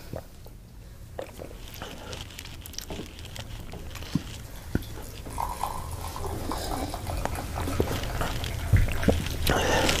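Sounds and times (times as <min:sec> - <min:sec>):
man sipping and swallowing: 0:01.2 - 0:10.0
breathing: 0:09.5 - 0:10.0.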